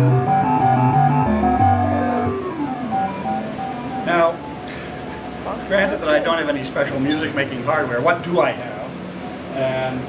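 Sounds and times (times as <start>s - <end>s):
computer synthesized four-part music: 0.0s - 6.3s.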